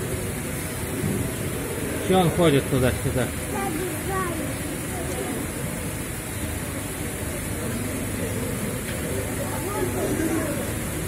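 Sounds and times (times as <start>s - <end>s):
indistinct chatter: 0.0s - 11.0s
steady background noise: 0.0s - 11.0s.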